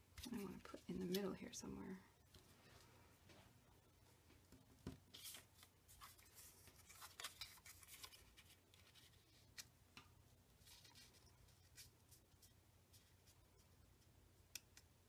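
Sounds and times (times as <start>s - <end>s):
low steady hum: 0.0s - 15.0s
paper rustling: 4.9s - 9.7s, 10.6s - 13.4s.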